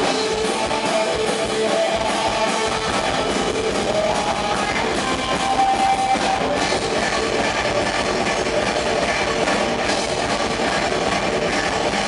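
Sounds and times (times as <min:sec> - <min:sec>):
drum kit: 0:00.0 - 0:12.0
electric bass: 0:00.0 - 0:12.0
guitar: 0:00.0 - 0:12.0.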